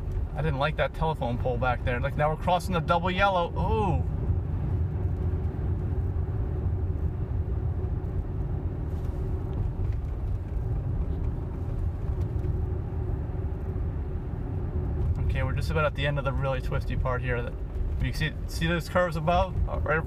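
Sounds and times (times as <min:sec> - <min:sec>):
road and tyre rumble in car: 0:00.0 - 0:20.0.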